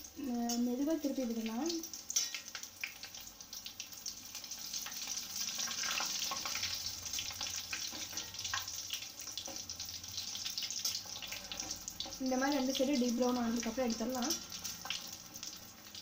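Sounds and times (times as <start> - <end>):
deep-frying sizzle in oil: 0.0 - 16.0.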